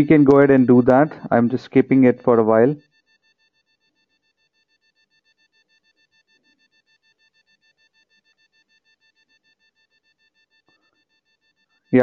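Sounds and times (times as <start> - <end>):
faint high-pitched tone: 0.0 - 2.8.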